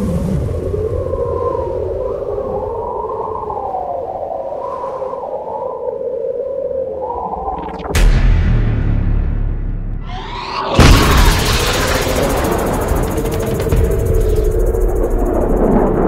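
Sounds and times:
low rumble drone: 8.0 - 16.0
rising synth sweep: 10.0 - 16.0.

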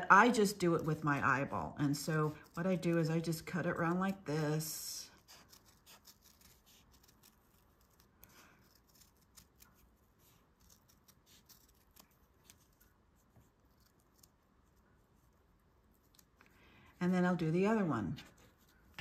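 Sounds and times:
scissors snipping through felt: 5.2 - 14.4.

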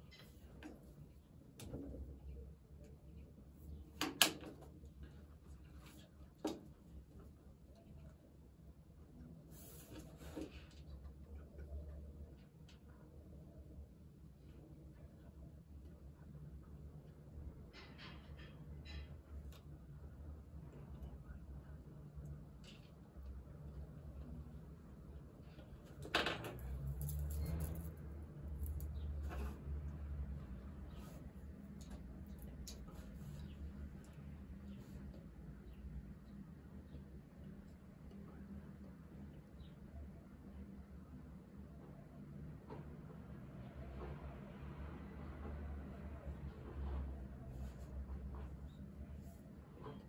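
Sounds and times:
low room hum: 0.0 - 50.0.

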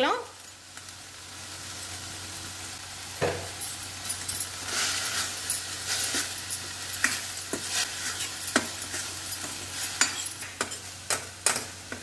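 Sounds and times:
food sizzling in a pan: 0.0 - 12.0
spoon scraping and tapping pan: 5.5 - 12.0.

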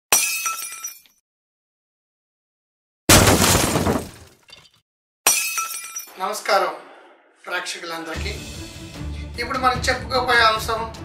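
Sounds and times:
glass shattering: 0.1 - 1.2, 3.1 - 6.2.

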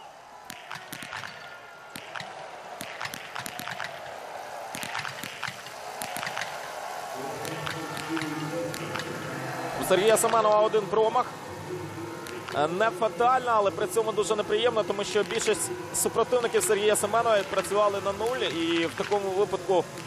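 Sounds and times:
crowd and stadium noise: 0.0 - 20.0.

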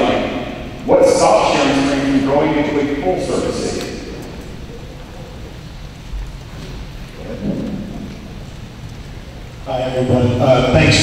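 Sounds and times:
low rumbling room noise: 0.0 - 11.0.

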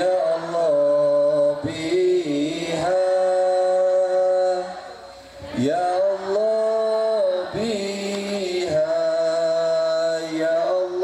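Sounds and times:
voice chanting over loudspeaker: 0.0 - 11.0.

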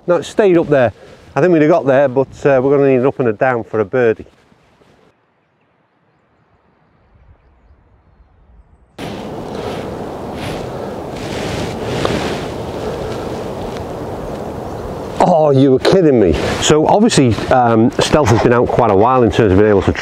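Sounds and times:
wind buffeting microphone: 0.0 - 3.4, 6.3 - 20.0.

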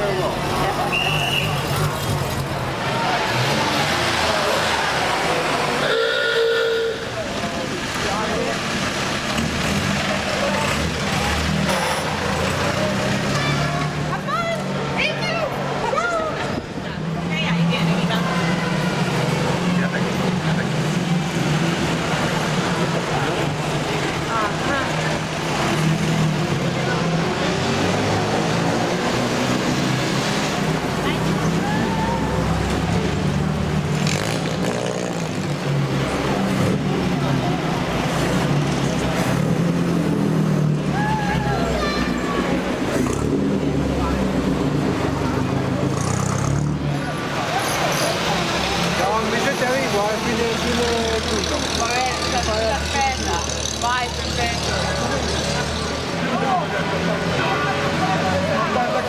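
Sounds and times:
crowd chatter: 0.0 - 59.0
vintage car engines passing: 0.0 - 59.0.

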